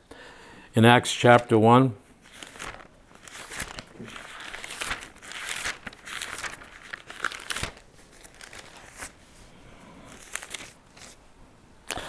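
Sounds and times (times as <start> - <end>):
page flip: 2.2 - 9.5, 10.1 - 11.2
pages rustling: 2.2 - 11.2.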